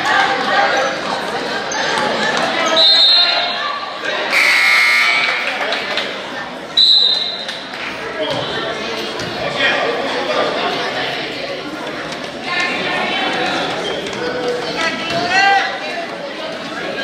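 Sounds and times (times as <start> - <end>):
players and spectators voices: 0.0 - 17.0
loud shrill whistle blast: 4.3 - 5.6, 6.8 - 7.4.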